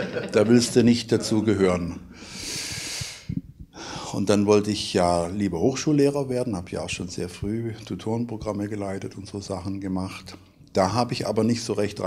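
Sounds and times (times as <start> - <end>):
man breathing in: 2.1 - 4.2.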